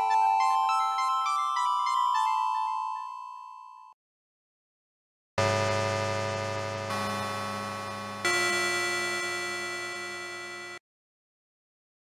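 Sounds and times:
synthesizer bell-like notes: 0:05.4 - 0:10.8.

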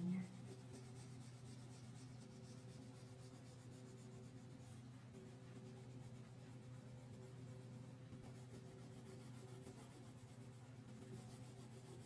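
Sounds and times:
crayon scratching on paper: 0:00.0 - 0:12.0.

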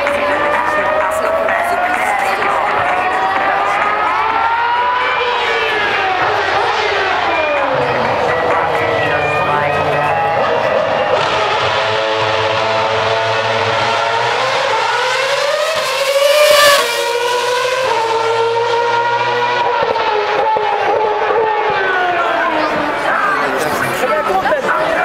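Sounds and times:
racing car passing at speed: 0:00.0 - 0:25.0.

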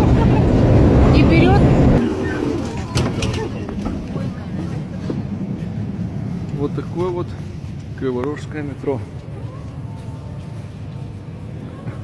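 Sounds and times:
tram rumbling: 0:00.0 - 0:12.0.

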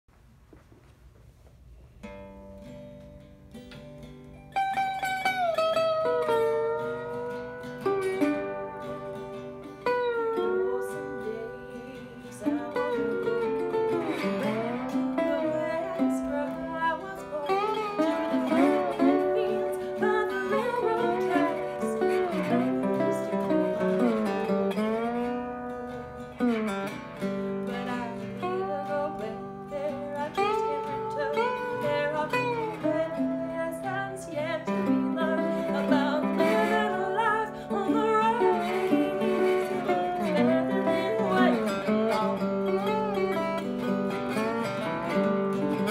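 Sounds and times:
slide resonator guitar: 0:02.0 - 0:45.9
strummed archtop guitar: 0:02.0 - 0:45.9
woman singing: 0:06.2 - 0:25.4, 0:26.2 - 0:45.9.

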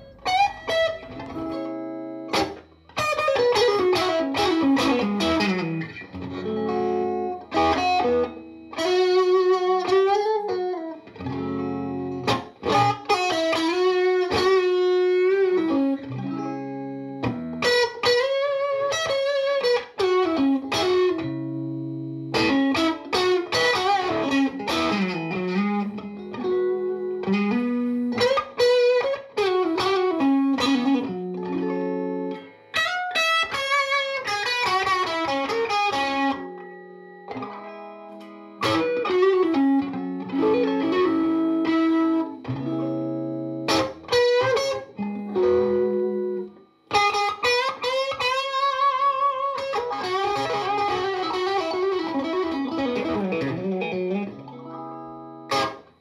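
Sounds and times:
electric guitar playing: 0:00.0 - 0:56.0.

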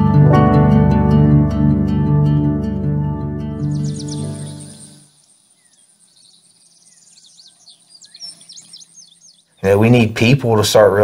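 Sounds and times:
small birds chirping: 0:03.5 - 0:11.0
high insect drone: 0:03.7 - 0:09.6.

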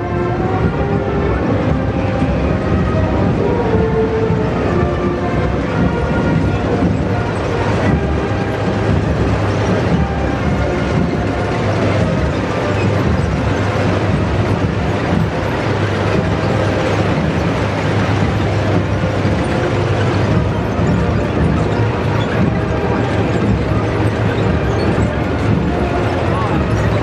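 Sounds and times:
military vehicles driving past: 0:00.0 - 0:27.0.

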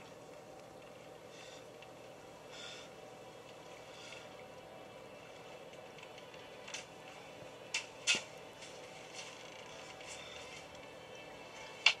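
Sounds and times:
low steady hum: 0:00.0 - 0:12.0
quiet film soundtrack: 0:00.0 - 0:12.0.

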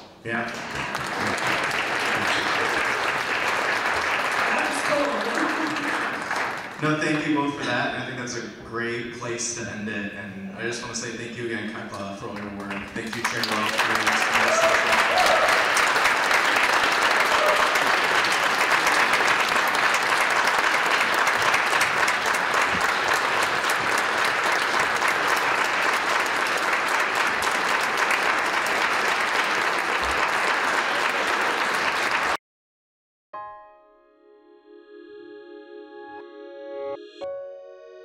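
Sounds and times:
audience applauding: 0:00.3 - 0:07.7, 0:11.9 - 0:32.4.

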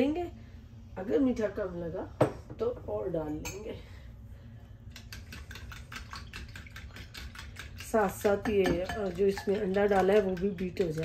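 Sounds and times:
whisk clicking in ceramic bowl: 0:04.9 - 0:11.0.

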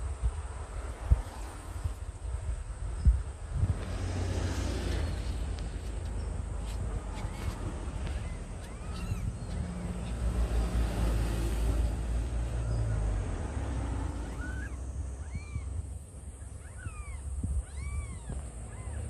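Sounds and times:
low rumbling noise: 0:00.0 - 0:19.0
cat mewing: 0:07.1 - 0:10.2, 0:14.2 - 0:15.8, 0:16.5 - 0:19.0.

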